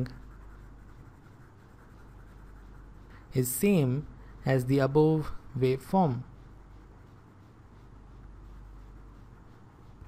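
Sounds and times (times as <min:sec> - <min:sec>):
stylus scratching on tablet: 0:00.0 - 0:10.0.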